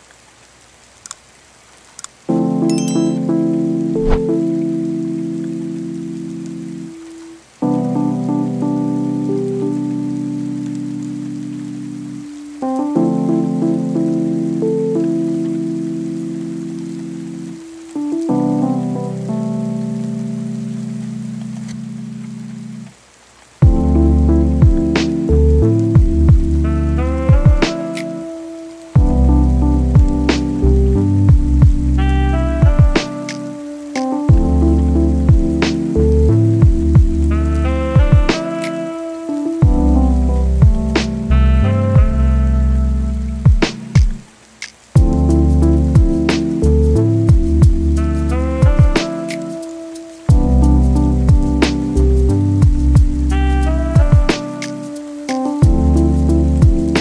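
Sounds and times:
rain-like noise: 0:00.0 - 0:57.0
keyboard chords: 0:02.3 - 0:22.8, 0:23.6 - 0:44.2, 0:45.0 - 0:57.0
drums and deep bass: 0:23.6 - 0:27.8, 0:29.0 - 0:33.2, 0:34.3 - 0:38.4, 0:39.6 - 0:40.0, 0:40.6 - 0:42.3, 0:43.4 - 0:44.2, 0:45.0 - 0:49.1, 0:50.3 - 0:54.4, 0:55.6 - 0:57.0.

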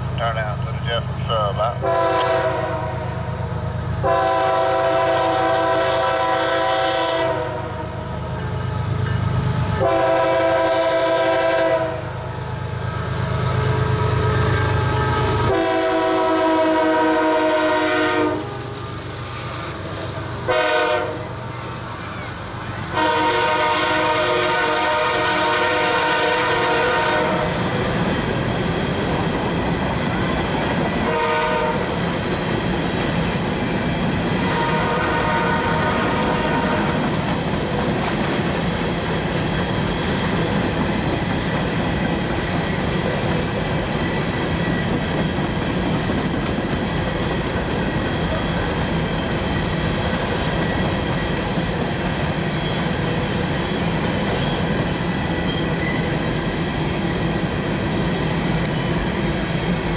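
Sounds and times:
train wheels rumbling on rail: 0:00.0 - 0:59.9
train horn: 0:01.8 - 0:03.3, 0:04.0 - 0:08.1, 0:09.7 - 0:12.2, 0:13.4 - 0:18.6, 0:20.5 - 0:21.4, 0:22.9 - 0:27.6, 0:31.0 - 0:32.0, 0:34.4 - 0:37.1.

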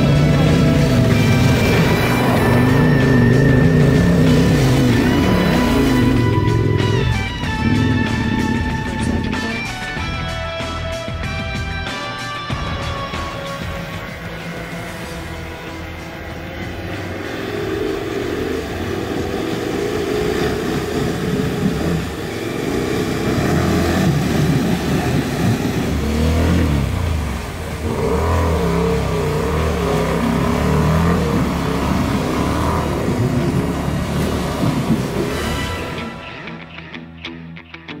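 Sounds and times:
motorcycle engine revving: 0:00.0 - 0:10.8, 0:12.6 - 0:36.5.

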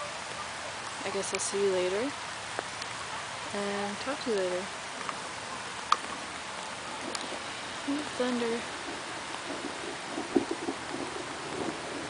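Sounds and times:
light rain hiss: 0:00.0 - 0:12.0.

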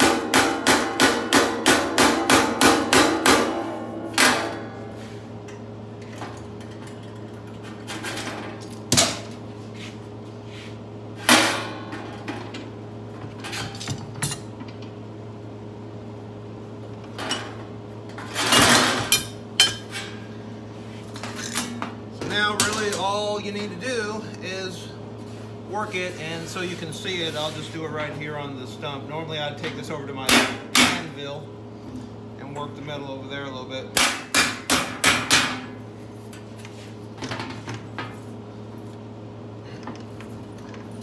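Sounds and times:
hammer tapping sheet metal: 0:00.0 - 0:04.5
knocks and clanks of handled tools: 0:21.1 - 0:23.1.

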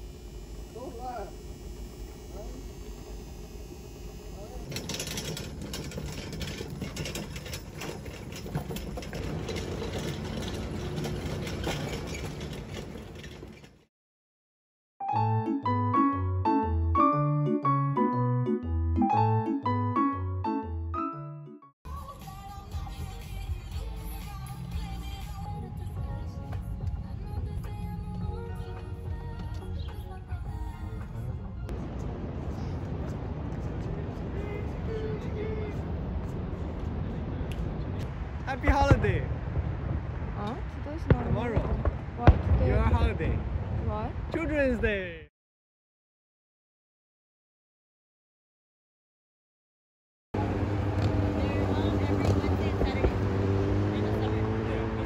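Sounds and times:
low rumble of traffic: 0:00.0 - 0:13.7, 0:23.1 - 0:44.4, 0:50.4 - 0:55.0
metal cart rolling and rattling: 0:04.6 - 0:13.8.

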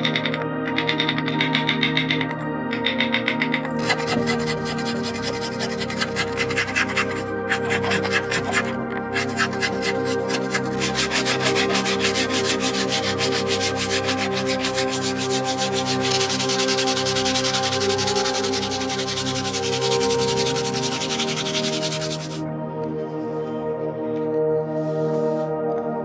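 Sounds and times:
metal blade scraping wood: 0:00.0 - 0:22.4
sanding wood: 0:00.0 - 0:22.4
ambient background music: 0:00.0 - 0:26.0.

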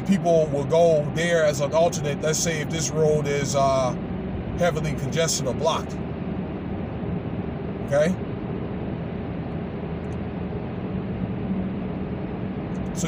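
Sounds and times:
car road and engine noise: 0:00.0 - 0:13.0.

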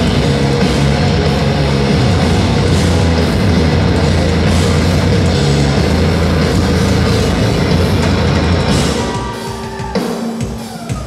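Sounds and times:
hardcore band playing live: 0:00.0 - 0:11.0.

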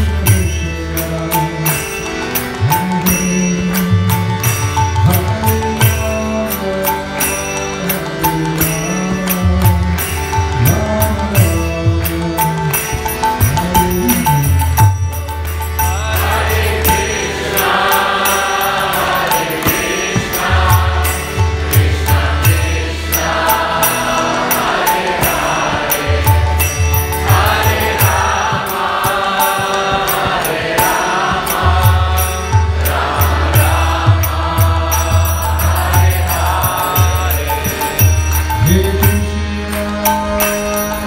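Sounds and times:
devotional chanting: 0:00.0 - 0:41.0
harmonium chords: 0:00.0 - 0:41.0
percussion beat: 0:00.0 - 0:41.0.

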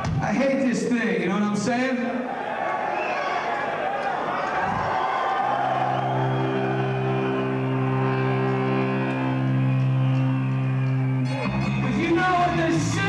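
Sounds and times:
band playing: 0:05.6 - 0:13.0.

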